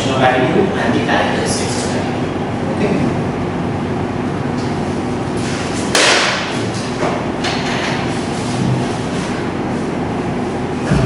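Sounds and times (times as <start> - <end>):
rumbling room noise: 0.0 - 11.0.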